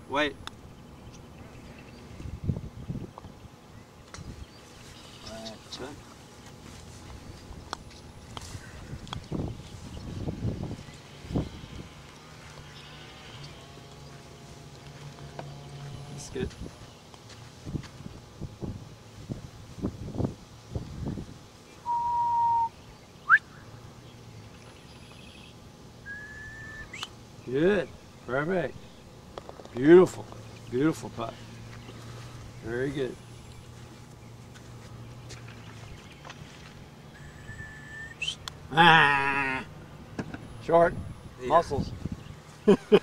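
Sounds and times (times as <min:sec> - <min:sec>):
held falling whistle: 0:21.8 - 0:22.7, 0:26.1 - 0:27.1, 0:37.2 - 0:38.4
sharp rising whistle: 0:21.8 - 0:23.5, 0:26.0 - 0:27.1, 0:37.2 - 0:38.4.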